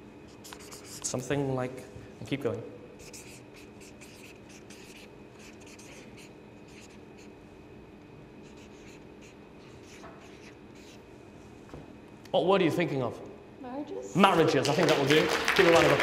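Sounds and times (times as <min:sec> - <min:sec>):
faint steady hum: 0:00.0 - 0:16.0
marker pen writing: 0:00.3 - 0:01.2, 0:03.0 - 0:07.4, 0:08.4 - 0:11.1.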